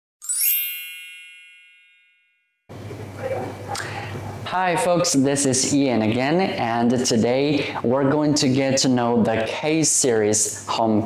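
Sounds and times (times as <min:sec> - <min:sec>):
shimmering chime: 0:00.2 - 0:02.4.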